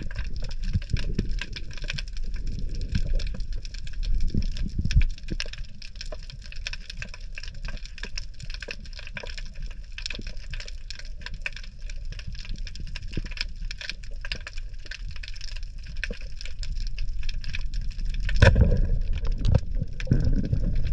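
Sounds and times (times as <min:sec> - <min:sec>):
low rumbling water noise: 0:00.0 - 0:20.9
snapping shrimp crackle underwater: 0:00.0 - 0:20.9
underwater thuds: 0:18.2 - 0:20.9.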